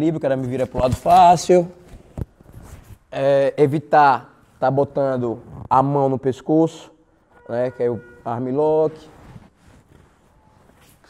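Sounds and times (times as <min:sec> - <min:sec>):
fabric rustling: 0:00.4 - 0:03.1, 0:08.6 - 0:11.0.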